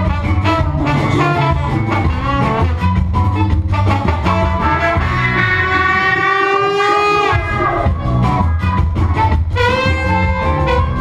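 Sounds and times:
live band with horns: 0.0s - 11.0s.

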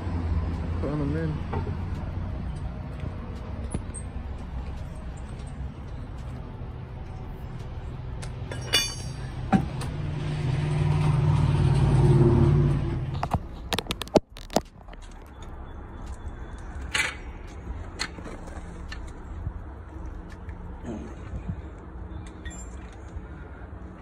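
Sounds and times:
vehicle engine rumble: 0.0s - 24.0s
tools clanking: 8.2s - 10.0s.

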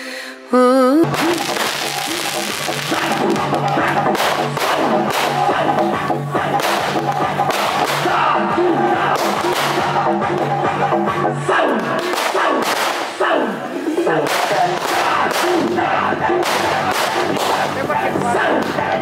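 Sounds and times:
fireworks bangs and crackle: 1.0s - 10.6s, 11.8s - 13.2s, 14.1s - 19.0s
music with low notes: 1.0s - 19.0s.

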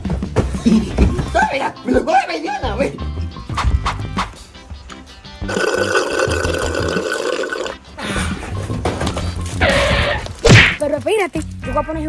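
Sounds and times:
background music with steady beat: 0.0s - 9.6s
liquid gurgling: 5.5s - 7.8s.

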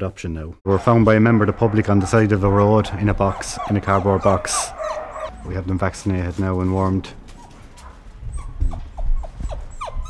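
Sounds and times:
puppy whimpering: 0.8s - 5.6s, 8.3s - 10.0s.

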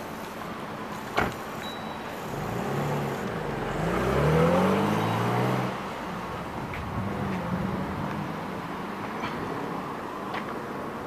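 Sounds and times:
car engine accelerating past: 2.3s - 5.9s.

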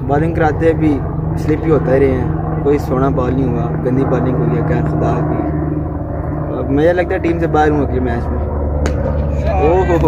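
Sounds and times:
steady low rumble: 0.0s - 10.0s
man speaking: 9.4s - 10.0s.

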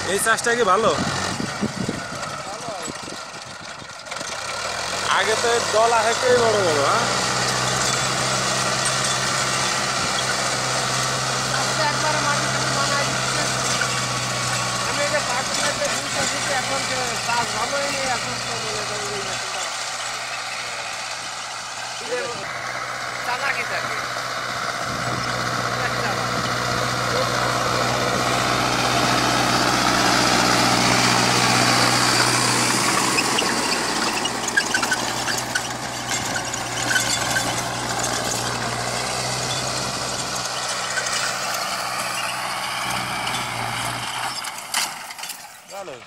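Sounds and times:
rotavator grinding through soil: 0.0s - 46.0s
tractor diesel engine under load: 0.0s - 46.0s.

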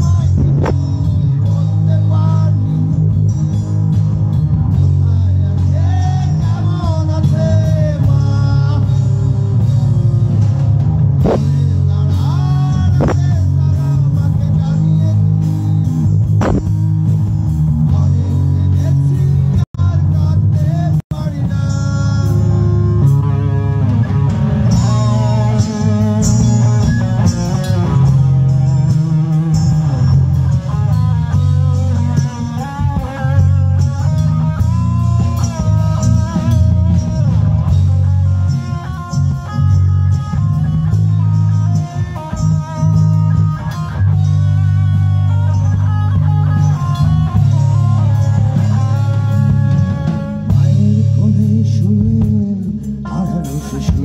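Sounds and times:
electric guitar melody: 0.0s - 54.0s
live rock band: 0.0s - 54.0s.

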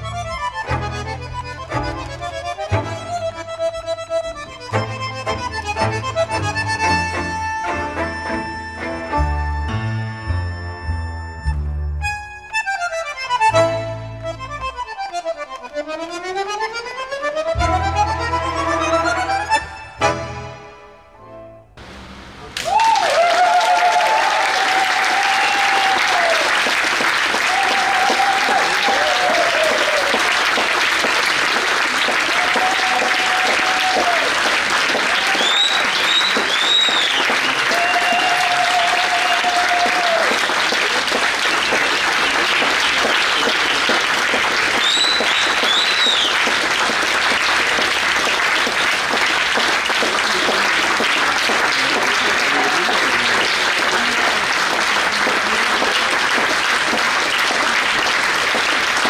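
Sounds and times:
audience applauding: 22.5s - 59.0s
crowd calling out: 22.6s - 26.7s, 27.3s - 30.4s, 32.2s - 41.5s
high whistles: 35.3s - 38.3s, 44.8s - 46.5s.

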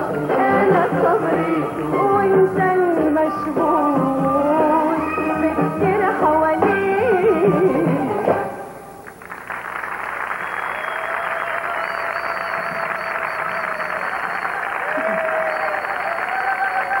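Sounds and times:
audience applauding and cheering: 9.0s - 17.0s.

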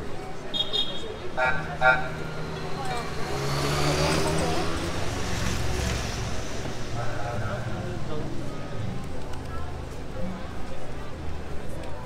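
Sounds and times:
people talking: 0.0s - 12.0s
vehicle engine passing: 2.0s - 8.5s.

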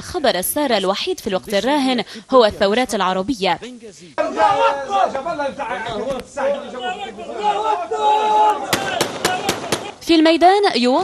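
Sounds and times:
men shouting and chattering: 3.5s - 10.1s
rifle shots: 8.7s - 10.0s.

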